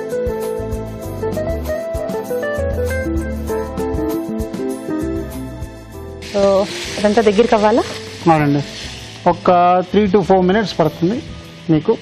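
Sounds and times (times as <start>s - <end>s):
music with plucked notes: 0.0s - 9.3s
chicken sizzling in a pan: 6.2s - 12.0s.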